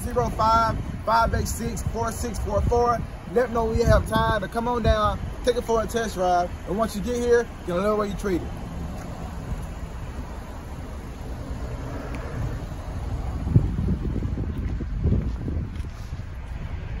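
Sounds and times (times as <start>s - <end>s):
car engine idling: 0.0s - 17.0s
wind buffeting microphone: 0.0s - 17.0s.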